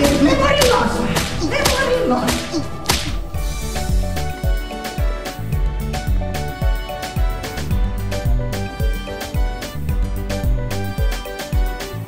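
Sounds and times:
sharp smacking blows: 0:00.0 - 0:03.4
background music: 0:00.0 - 0:12.0.

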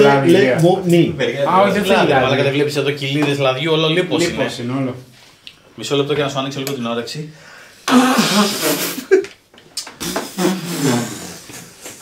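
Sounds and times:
man blowing his nose: 0:07.8 - 0:09.2, 0:10.0 - 0:12.0.

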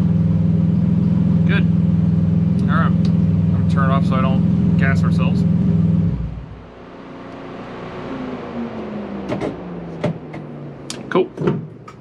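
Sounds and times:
whir winding down: 0:02.5 - 0:11.2.

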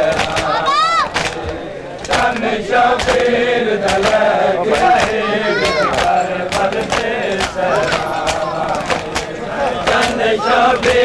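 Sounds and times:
hands slapping chests: 0:00.0 - 0:11.0
men chanting in unison: 0:00.0 - 0:11.0.

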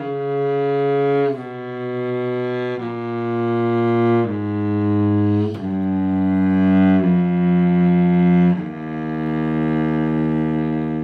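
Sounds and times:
cello playing long low note: 0:00.0 - 0:11.0.

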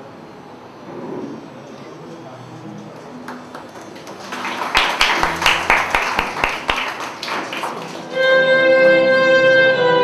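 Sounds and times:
audience applauding: 0:03.1 - 0:08.2
sharp close claps: 0:03.3 - 0:08.0.

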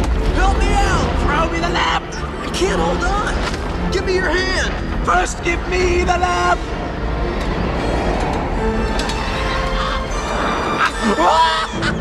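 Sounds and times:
orchestral film score: 0:00.0 - 0:12.0
cackling: 0:09.3 - 0:12.0
character crying out: 0:10.8 - 0:12.0.

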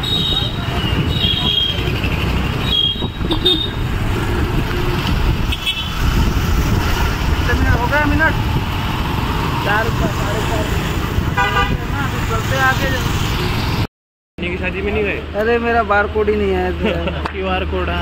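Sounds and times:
street traffic: 0:00.0 - 0:18.0
vehicle horn honks: 0:02.6 - 0:03.8, 0:11.4 - 0:11.8.

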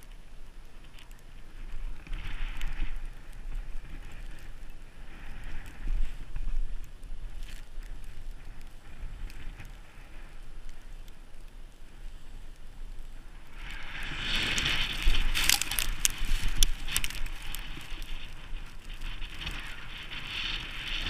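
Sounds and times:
snowboard scraping over snow: 0:13.1 - 0:21.0.

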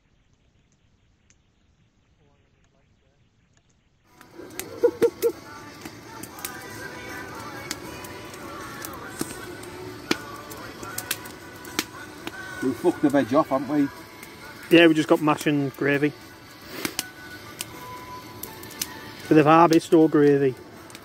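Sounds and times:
campfire crackling and popping: 0:00.2 - 0:21.0
music: 0:04.1 - 0:21.0
voices: 0:04.2 - 0:20.6.

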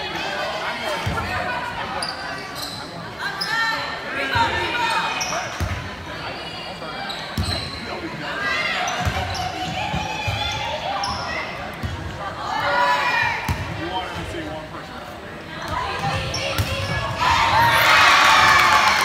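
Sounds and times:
sneakers squeaking on hardwood: 0:07.1 - 0:07.9.

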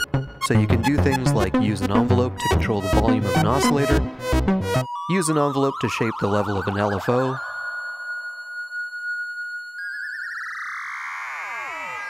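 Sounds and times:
modulated synthesizer tone: 0:00.0 - 0:12.0.

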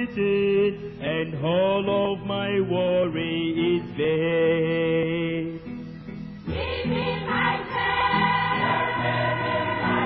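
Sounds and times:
hymn sung slowly: 0:06.5 - 0:10.0.

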